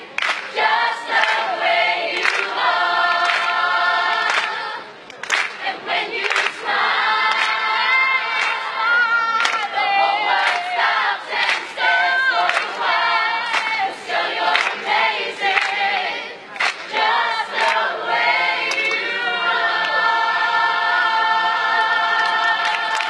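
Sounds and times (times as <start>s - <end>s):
mixed chorus singing: 0.0s - 23.0s.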